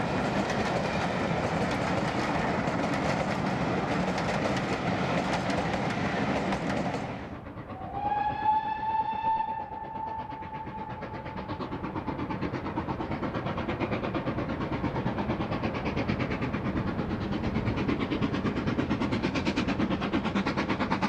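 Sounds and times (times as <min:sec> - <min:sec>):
train coaches rolling by: 0:00.0 - 0:21.0
distant steam whistle: 0:07.7 - 0:11.8.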